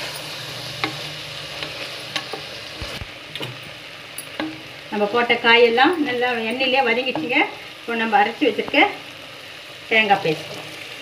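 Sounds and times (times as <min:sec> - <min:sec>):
vegetables sizzling in a pot: 0:00.0 - 0:11.0.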